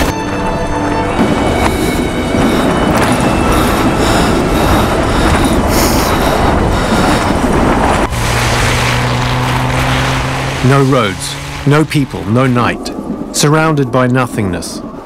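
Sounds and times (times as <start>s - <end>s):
vehicle driving through snow: 0.0s - 13.2s
steady low hum: 1.2s - 15.0s.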